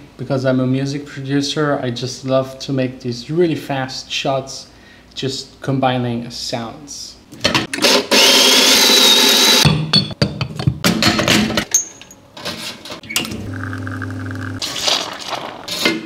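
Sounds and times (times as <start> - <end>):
coffee grinder whirring: 7.8 - 9.6, 13.3 - 14.9
espresso machine pump humming: 13.3 - 14.6.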